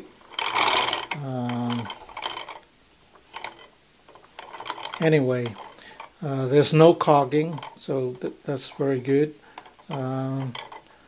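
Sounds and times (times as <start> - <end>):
rotor clicking and rattling: 0.0 - 11.0.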